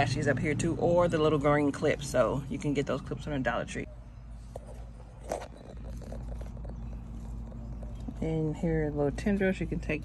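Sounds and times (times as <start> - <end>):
low steady background rumble: 0.0 - 10.0.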